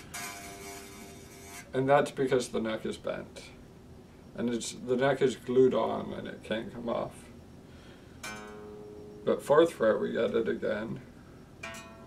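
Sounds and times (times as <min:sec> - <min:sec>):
electric guitar note plucked: 0:08.2 - 0:09.2.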